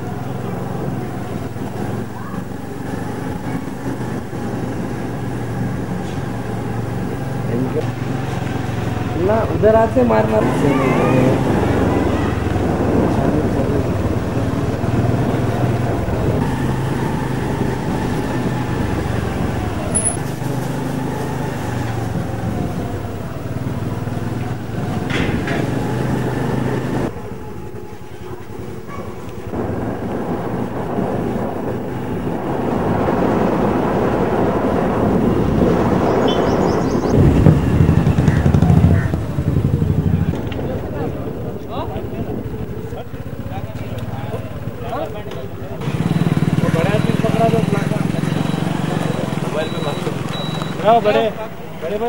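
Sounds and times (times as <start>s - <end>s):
road and wind noise: 0.0s - 52.0s
vehicle engine running: 0.0s - 52.0s.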